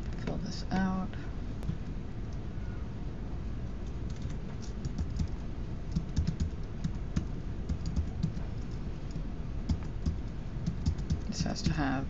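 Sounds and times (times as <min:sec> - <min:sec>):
typing on computer keyboard: 0:04.1 - 0:11.3.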